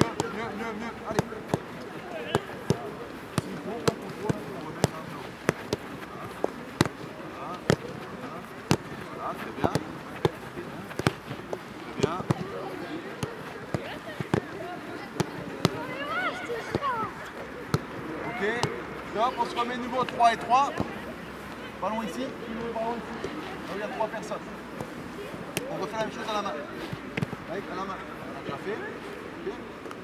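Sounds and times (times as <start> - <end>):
footballs kicked on artificial turf: 0.0 - 21.0, 22.1 - 27.9
children calling out: 15.8 - 17.3.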